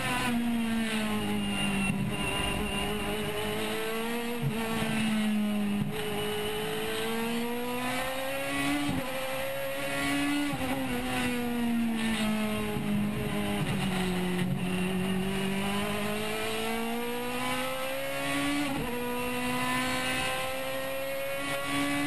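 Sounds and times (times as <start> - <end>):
race car engine running hard: 0.0 - 22.0.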